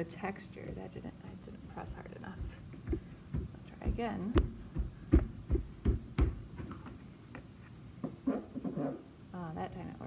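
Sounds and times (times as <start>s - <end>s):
dull thumps of clay on table: 0.6s - 8.2s.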